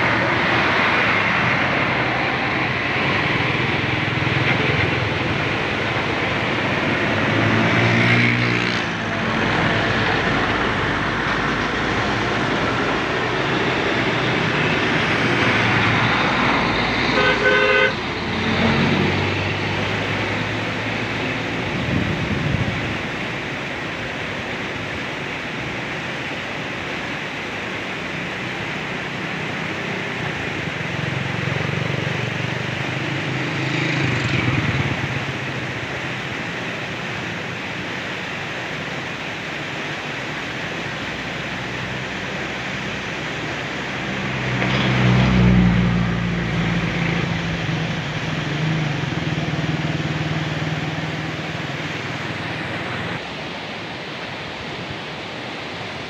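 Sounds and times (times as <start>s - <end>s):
road traffic: 0.0s - 56.0s
vehicle horn toot: 17.2s - 18.0s.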